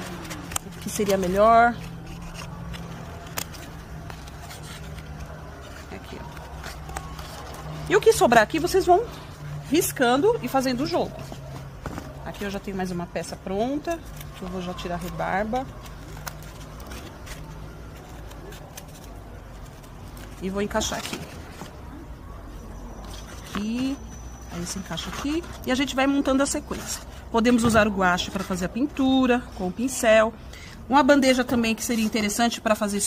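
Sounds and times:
scissors snipping: 0:00.0 - 0:08.7, 0:13.4 - 0:21.5.

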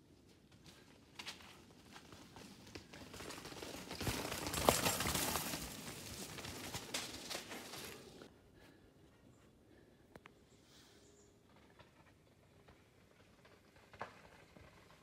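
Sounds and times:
bike tyres crunching over dirt and rock: 0:00.2 - 0:08.3, 0:11.4 - 0:15.0
bike clicking and knocking over rocks: 0:01.2 - 0:08.3.

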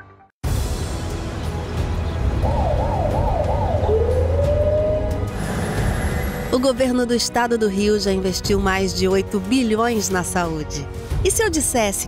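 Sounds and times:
emergency siren warbling: 0:02.4 - 0:05.3.

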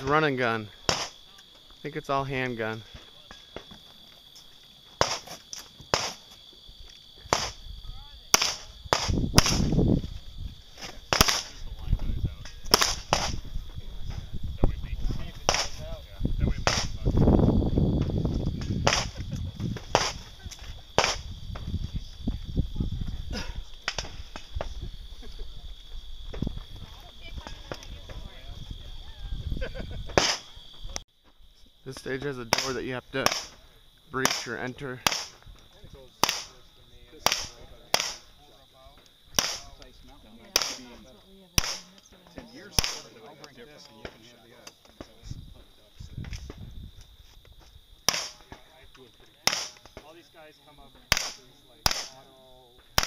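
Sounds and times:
high insect drone: 0:00.0 - 0:53.0
wind rumble on microphone: 0:07.6 - 0:10.7, 0:11.5 - 0:31.0, 0:45.2 - 0:47.2
handgun shots: 0:37.3 - 0:38.2, 0:39.4 - 0:39.7, 0:41.6 - 0:41.8, 0:49.5 - 0:49.9, 0:51.1 - 0:52.2.

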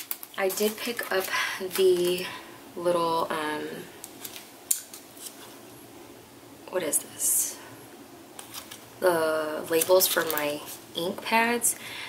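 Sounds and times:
plastic packaging crinkling: 0:00.0 - 0:02.3, 0:04.0 - 0:05.6, 0:08.4 - 0:08.9, 0:09.7 - 0:10.8.

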